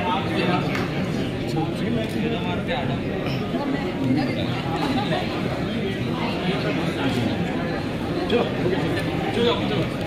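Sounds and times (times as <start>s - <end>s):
people chattering indistinctly: 0.0s - 10.0s.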